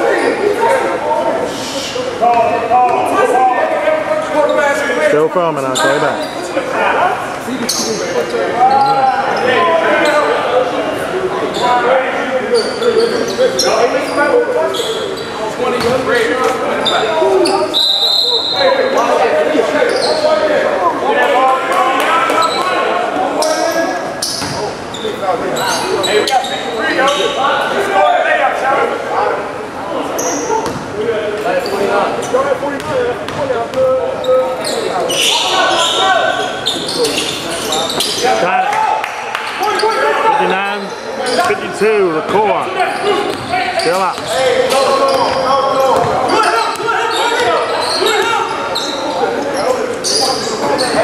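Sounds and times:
people talking: 0.0 - 51.0.

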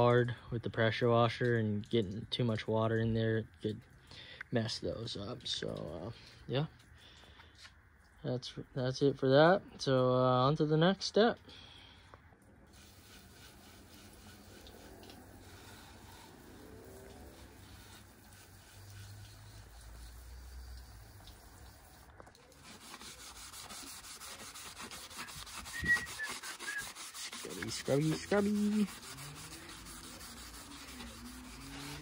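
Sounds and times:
scouring pad scrubbing metal: 12.7 - 32.0.

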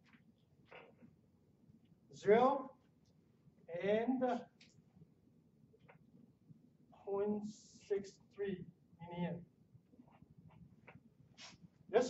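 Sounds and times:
marker squeaking on a whiteboard: 10.0 - 11.7.

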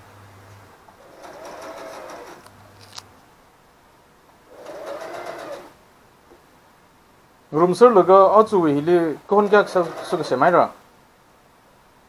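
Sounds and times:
sewing machine stitching: 1.0 - 2.5, 4.5 - 5.8, 9.3 - 10.7.

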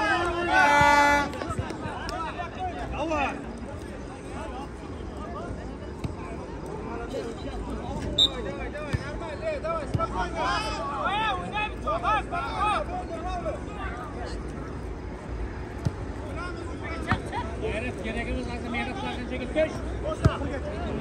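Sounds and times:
crowd chatter: 0.0 - 21.0
people calling and shouting: 0.0 - 21.0
football being kicked: 15.8 - 16.0.

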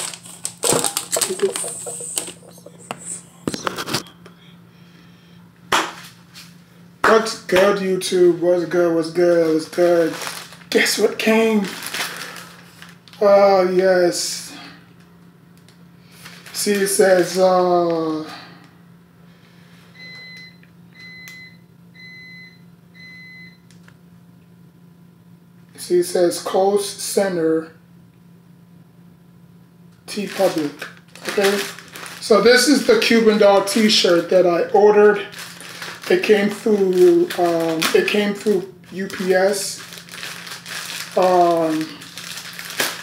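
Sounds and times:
steady low hum: 0.0 - 43.0
electronic appliance beeps: 0.6 - 3.2, 19.9 - 23.7.

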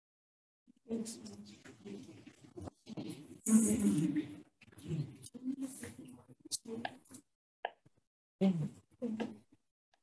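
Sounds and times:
indistinct voices over video call: 0.7 - 10.0.

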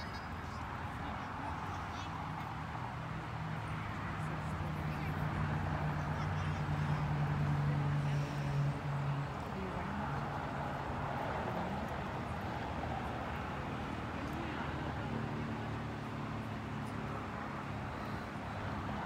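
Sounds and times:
faint distant voices: 0.0 - 19.0
outdoor background noise: 0.0 - 19.0.

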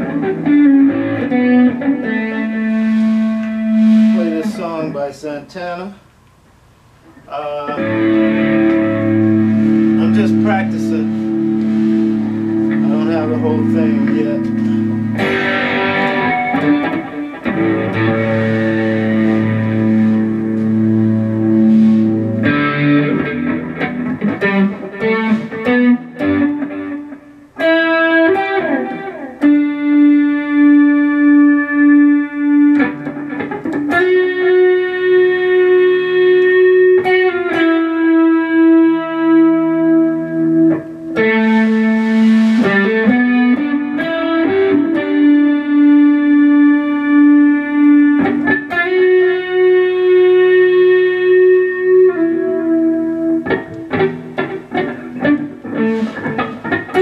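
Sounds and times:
electric guitar lead melody: 0.0 - 5.1, 7.1 - 57.0.

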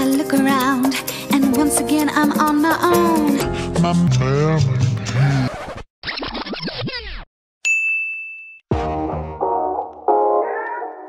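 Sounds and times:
upbeat instrumental music: 0.0 - 5.3, 8.7 - 11.0
bright ding: 7.6 - 8.6.

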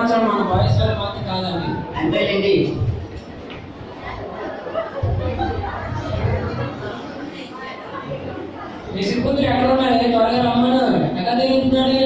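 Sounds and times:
indistinct chatter in echoing hall: 0.0 - 12.0.

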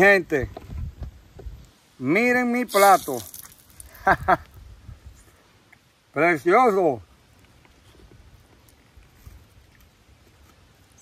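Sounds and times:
man speaking: 2.0 - 3.4, 6.2 - 7.0
short voiced sounds: 2.7 - 3.5.

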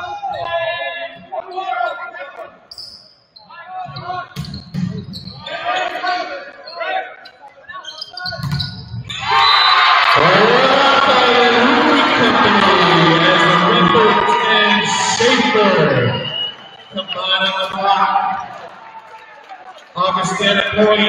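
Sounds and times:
voices calling: 9.2 - 18.5.

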